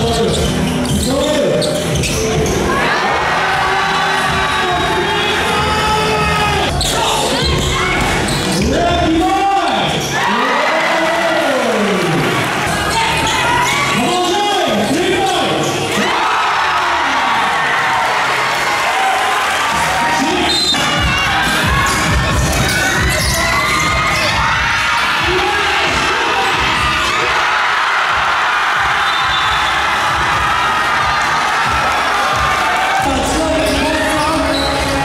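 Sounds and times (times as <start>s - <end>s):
crowd noise: 0.0s - 35.0s.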